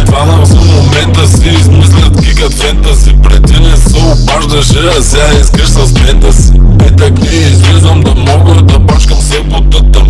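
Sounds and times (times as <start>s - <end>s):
rapping over a heavy bass beat: 0.0s - 10.0s.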